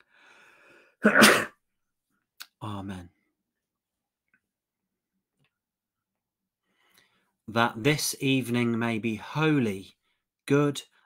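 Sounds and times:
faint breath in: 0.0s - 1.0s
man coughing: 1.0s - 1.6s.

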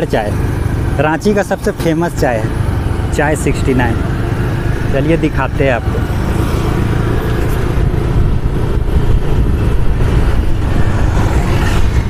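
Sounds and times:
motorcycle engine: 0.0s - 12.0s
road noise: 0.0s - 12.0s
wind buffeting microphone: 4.0s - 12.0s.

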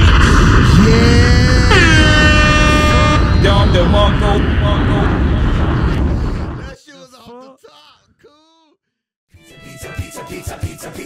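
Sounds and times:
air horn sound effect: 0.8s - 5.3s.

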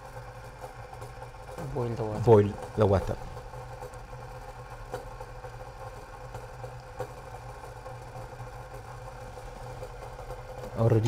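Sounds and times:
water heating in metal jug: 0.0s - 11.0s
faint ticks: 3.6s - 10.8s.

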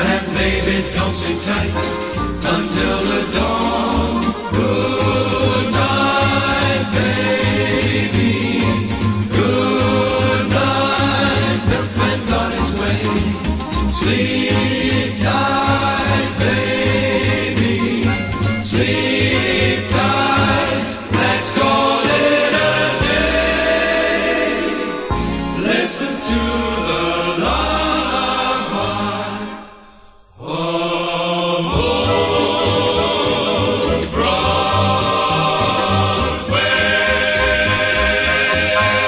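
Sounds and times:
choir singing with band: 0.0s - 39.0s.

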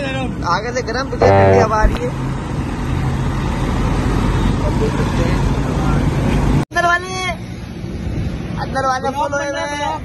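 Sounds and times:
tyres on the road: 0.0s - 10.0s.

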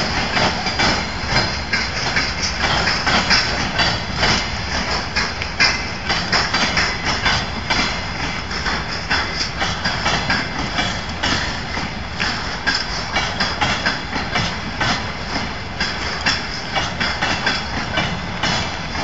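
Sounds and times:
freight train rumbling past: 0.0s - 19.0s
steel wheels clattering on rails: 0.0s - 19.0s.

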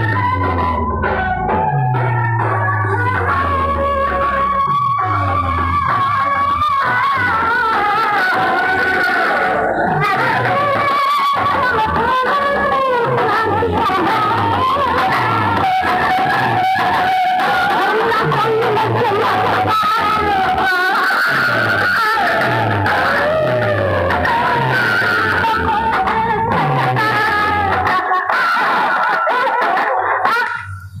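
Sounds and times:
loud music through horn loudspeakers: 0.0s - 30.7s.

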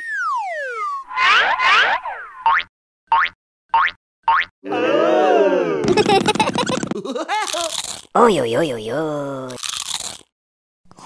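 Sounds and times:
cartoon swooping glides: 0.1s - 2.5s.

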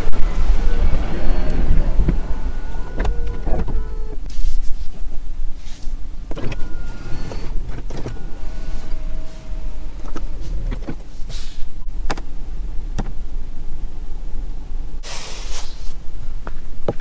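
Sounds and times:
electric seat motor whirring: 1.2s - 4.2s, 6.4s - 10.6s
seat clicks: 1.4s - 4.3s, 5.7s - 12.3s.

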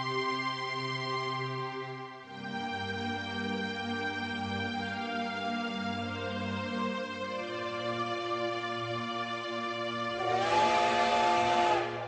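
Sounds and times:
slow music with sustained chords: 0.0s - 12.0s
breathy wind instrument note: 10.2s - 12.0s.

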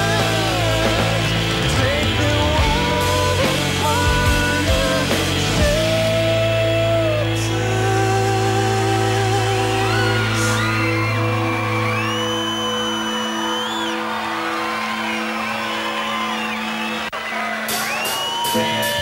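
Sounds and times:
rock band sustained chord: 0.0s - 17.1s
crowd whooping: 0.0s - 19.0s.

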